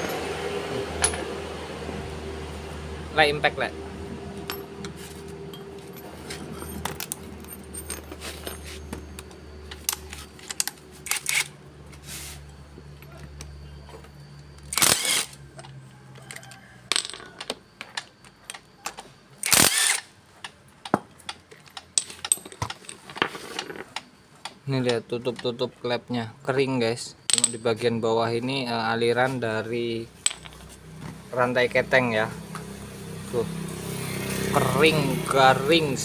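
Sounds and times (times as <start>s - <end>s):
metal tools clattering on concrete: 1.0s - 1.3s, 4.4s - 10.7s, 16.2s - 18.9s, 20.9s - 24.0s, 27.3s - 27.8s, 30.2s - 30.8s
cordless impact wrench bursts: 14.7s - 15.4s, 19.4s - 20.1s.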